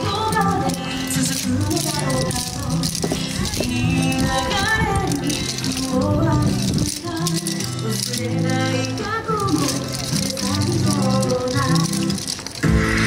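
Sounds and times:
wooden clappers clacking: 0:00.0 - 0:12.7
dance music: 0:00.0 - 0:13.0.

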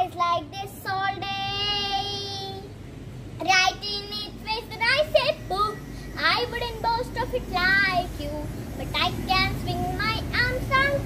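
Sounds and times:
girl reciting in sing-song chant: 0:00.0 - 0:02.8, 0:03.4 - 0:11.0.

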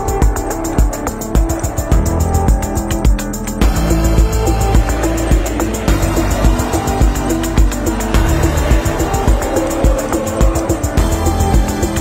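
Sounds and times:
electronic music with heavy bass beat: 0:00.0 - 0:12.0.

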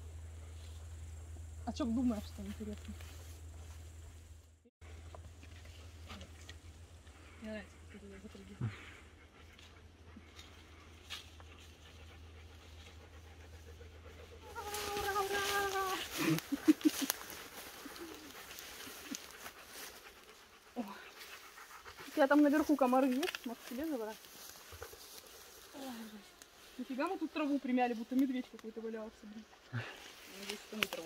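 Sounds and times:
dog panting: 0:06.6 - 0:14.7, 0:15.9 - 0:25.7.

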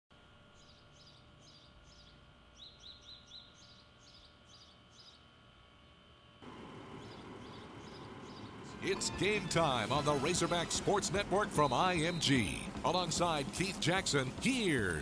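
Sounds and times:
outdoor ambient hiss: 0:00.1 - 0:15.0
faint bird chirping: 0:00.5 - 0:06.1, 0:06.8 - 0:08.8.

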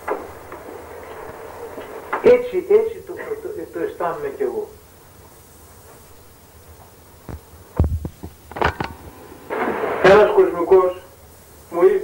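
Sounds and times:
low steady hum: 0:03.4 - 0:11.8
short knocks and dull thumps: 0:07.3 - 0:09.2.

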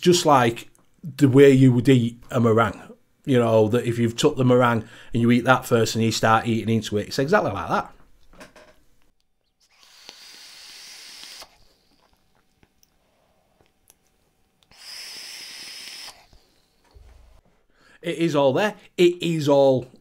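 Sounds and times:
breathy hisses of vapour: 0:09.8 - 0:12.1, 0:14.7 - 0:16.8
soft low thump: 0:17.0 - 0:17.4.

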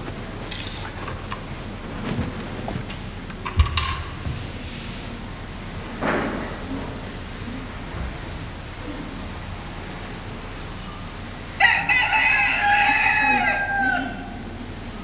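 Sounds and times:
rooster crowing: 0:11.6 - 0:14.7.

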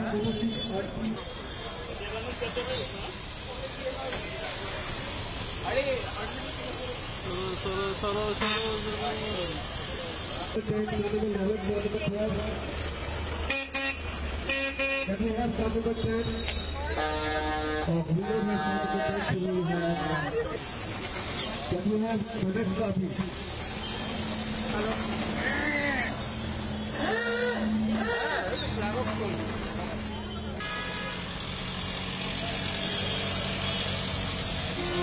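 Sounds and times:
car engine humming: 0:01.2 - 0:15.9
car horn toots: 0:13.5 - 0:15.2, 0:30.6 - 0:31.3, 0:34.7 - 0:35.0.

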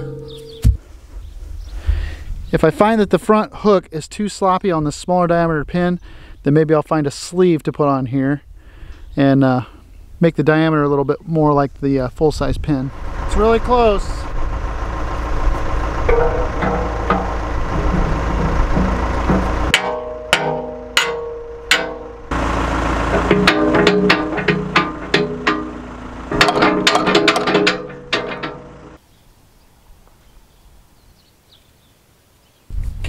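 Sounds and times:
diesel engine idling: 0:12.8 - 0:29.0
steel-on-steel knocks and clanks: 0:15.7 - 0:29.0.

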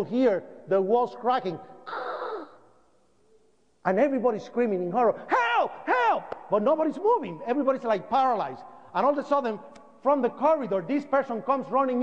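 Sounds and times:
man speaking: 0:00.0 - 0:01.7, 0:03.8 - 0:12.0.

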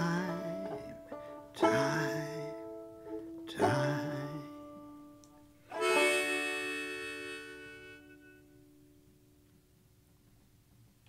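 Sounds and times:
harmonica: 0:00.0 - 0:04.9, 0:05.5 - 0:09.0
banjo chords: 0:00.0 - 0:08.9.

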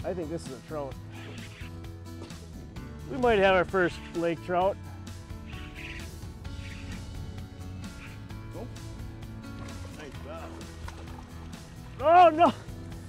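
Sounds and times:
background music with held notes: 0:00.0 - 0:13.0
low bass line: 0:01.0 - 0:13.0.

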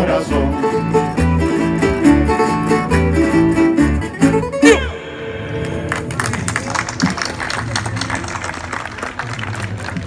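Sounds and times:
folk string ensemble strumming: 0:00.0 - 0:07.2.

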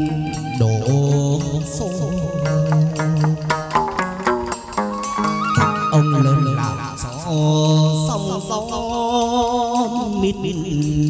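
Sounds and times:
plucked string accompaniment: 0:00.0 - 0:11.0.

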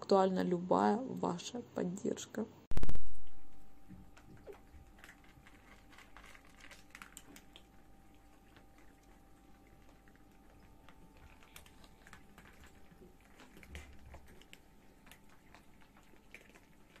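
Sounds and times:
faint steady hum: 0:00.0 - 0:17.0
cats crunching dry kibble: 0:03.2 - 0:17.0.

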